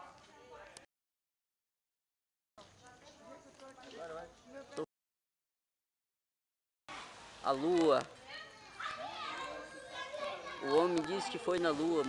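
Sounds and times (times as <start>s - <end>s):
children calling out: 8.3s - 11.7s.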